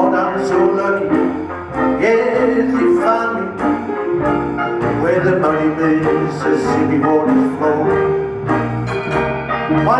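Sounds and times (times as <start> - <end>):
jazz band playing: 0.0 - 9.9.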